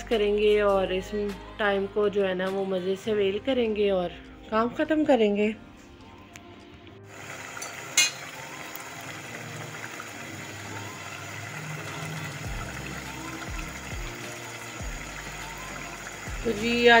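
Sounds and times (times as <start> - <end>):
background music with soft beat: 0.0 - 17.0
food sizzling in oil: 7.0 - 17.0.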